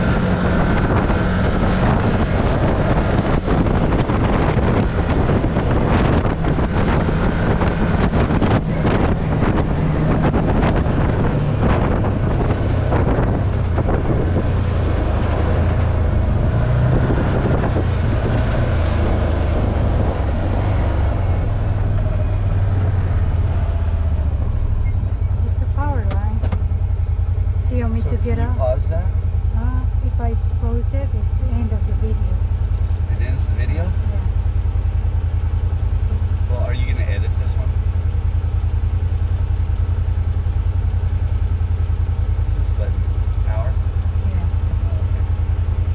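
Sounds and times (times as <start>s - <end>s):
wind noise on microphone: 0.0s - 26.6s
vehicle engine running: 0.0s - 45.9s.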